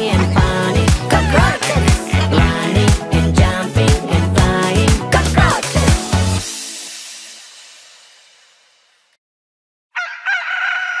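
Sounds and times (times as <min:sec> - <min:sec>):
rooster crowing: 0:10.0 - 0:11.0.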